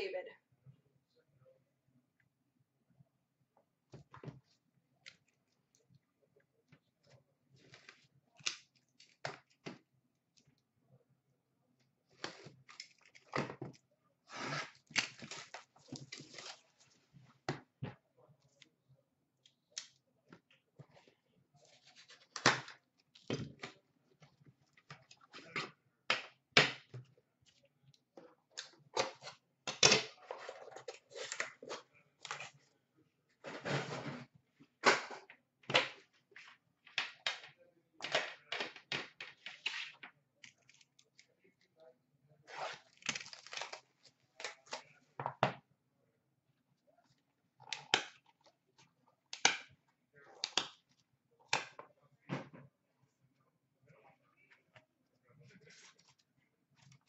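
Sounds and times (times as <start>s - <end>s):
plastic wrap tearing and crinkling: 42.6s - 44.0s.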